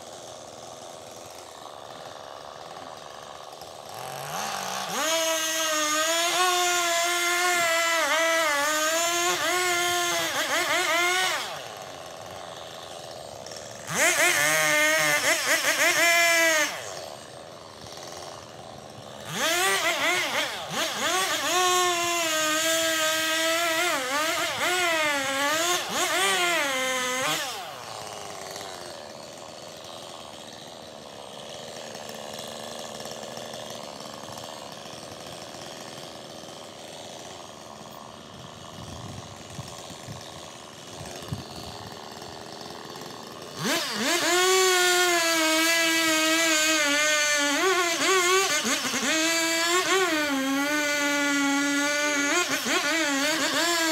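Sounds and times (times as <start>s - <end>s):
chainsaw cutting logs: 0.0s - 53.9s.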